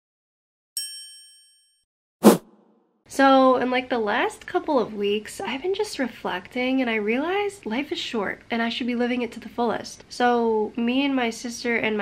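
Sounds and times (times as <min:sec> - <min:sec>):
bright bell-like ding: 0:00.8 - 0:01.8.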